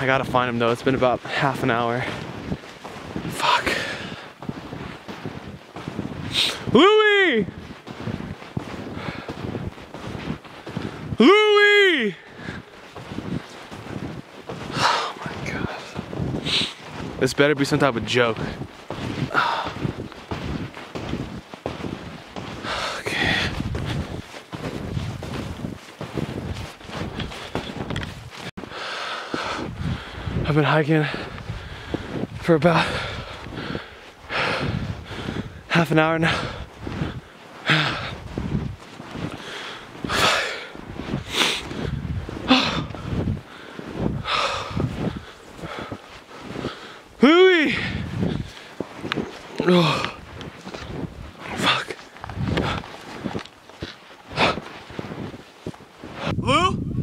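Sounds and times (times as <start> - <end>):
wind buffeting microphone: 0.0 - 57.0
heavy laboured breathing: 3.2 - 5.4, 8.2 - 11.1, 12.2 - 17.2, 18.4 - 20.7, 21.7 - 25.6, 28.6 - 55.0.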